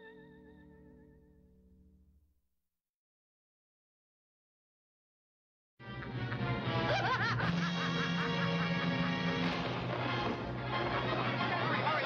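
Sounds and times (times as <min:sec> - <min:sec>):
orchestral film score: 0:05.8 - 0:12.0
witch cackling laugh: 0:06.0 - 0:09.4.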